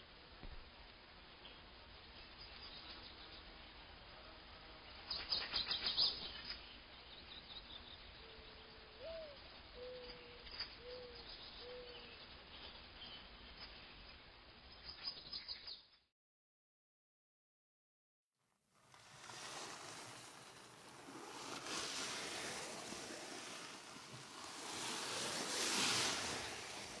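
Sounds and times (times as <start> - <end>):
low steady hiss: 0.0 - 15.9, 18.4 - 27.0.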